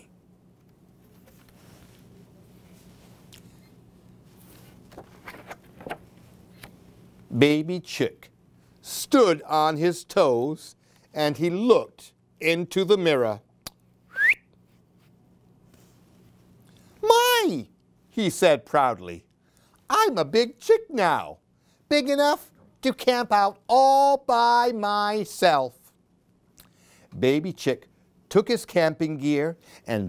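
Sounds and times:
low room hum: 0:00.0 - 0:30.0
book pages rustling: 0:00.9 - 0:06.8
man whistling upward glide: 0:14.1 - 0:14.5.

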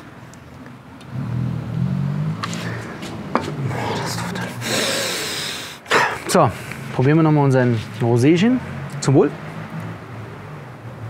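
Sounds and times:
short hissing rush: 0:03.7 - 0:06.9.

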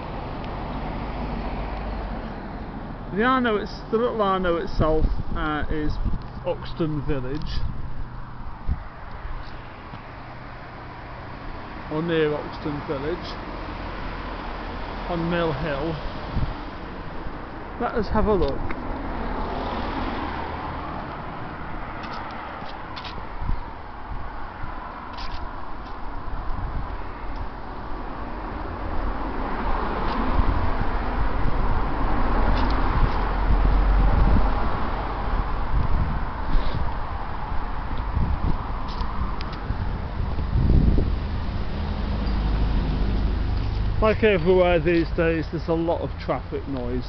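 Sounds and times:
cars passing: 0:00.0 - 0:47.0.

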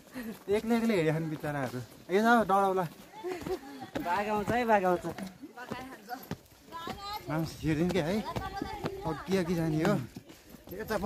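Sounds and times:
footfalls on stones: 0:00.3 - 0:11.0
people talking: 0:03.2 - 0:11.0.

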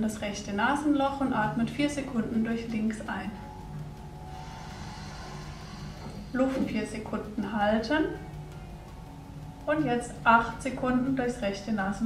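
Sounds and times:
soft background music: 0:00.0 - 0:12.0
breath drawn in through nostril: 0:04.2 - 0:06.6.

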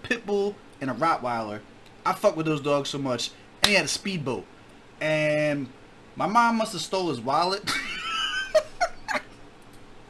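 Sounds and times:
man laughing: 0:07.7 - 0:09.4.

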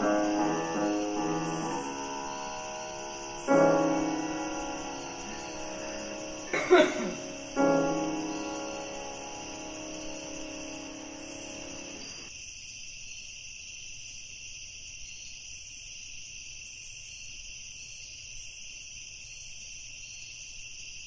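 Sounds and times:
low piano chord: 0:00.0 - 0:12.3
night insects chirring: 0:00.0 - 0:21.0.

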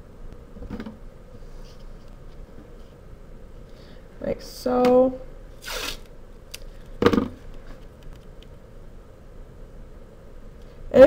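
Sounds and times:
masking tape being pulled and laid: 0:05.6 - 0:06.8.

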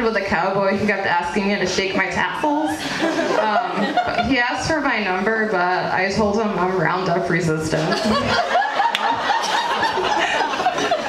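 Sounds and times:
people laughing: 0:02.6 - 0:04.5, 0:07.8 - 0:11.0.

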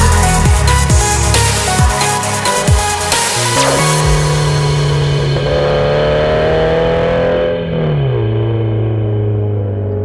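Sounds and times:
car engine running: 0:00.0 - 0:10.0.

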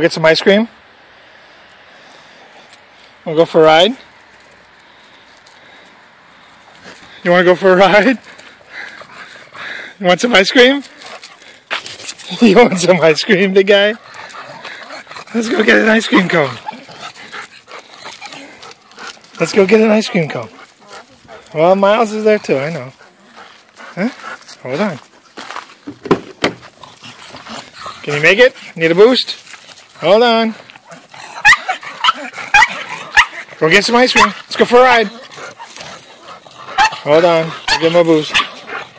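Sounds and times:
dog yipping: 0:30.8 - 0:33.4, 0:36.7 - 0:38.8.

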